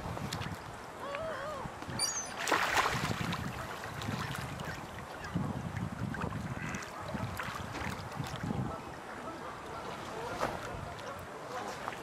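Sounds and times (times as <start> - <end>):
wind buffeting microphone: 0.0 - 0.9, 1.5 - 9.4
lake water washing: 0.0 - 12.0.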